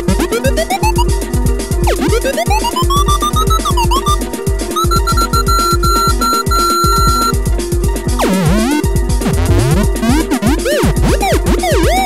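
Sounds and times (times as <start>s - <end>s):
low thudding electronic beat: 0.0s - 12.0s
high synth beeps: 0.2s - 1.1s, 1.9s - 4.2s, 4.8s - 7.4s.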